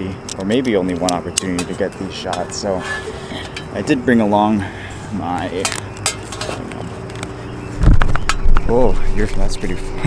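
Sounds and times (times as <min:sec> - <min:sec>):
faint steady hum: 0:00.0 - 0:10.0
camera gear clicks and clinks: 0:05.6 - 0:07.4
heavy low thump: 0:07.8 - 0:08.8.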